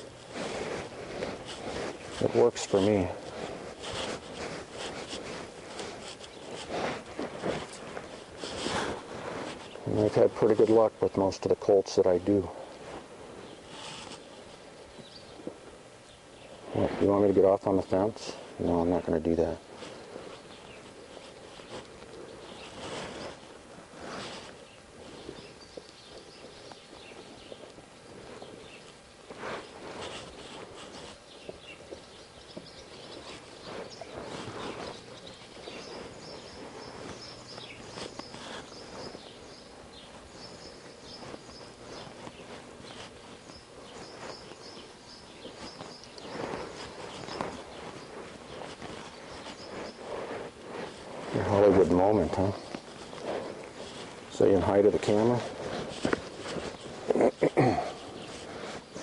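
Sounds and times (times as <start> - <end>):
hoofbeats on soft dirt: 0.0 - 10.7, 19.5 - 57.1.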